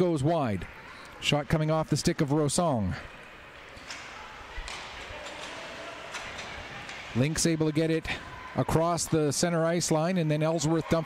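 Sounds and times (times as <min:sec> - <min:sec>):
hockey sticks and puck clicking: 0:03.5 - 0:07.2.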